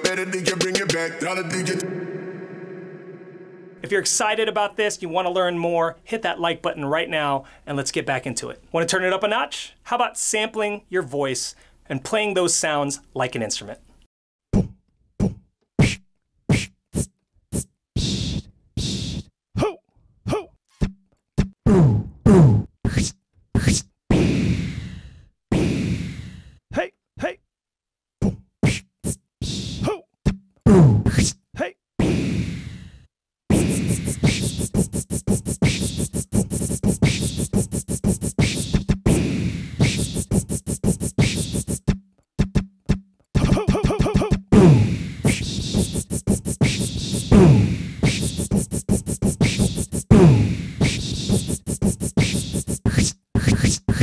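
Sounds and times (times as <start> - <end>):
man beatboxing into a microphone: 0.0 - 2.0, 14.6 - 20.4, 22.9 - 24.8, 28.2 - 30.0, 31.0 - 31.4, 33.5 - 41.9, 43.4 - 54.0
stuttered vocal hit: 0.0 - 3.9, 33.5 - 37.5, 38.4 - 40.3, 43.4 - 48.5, 50.1 - 51.2.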